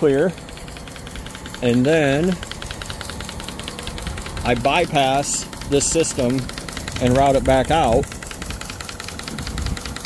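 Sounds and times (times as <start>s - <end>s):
small pump motor clattering: 0.0s - 10.0s.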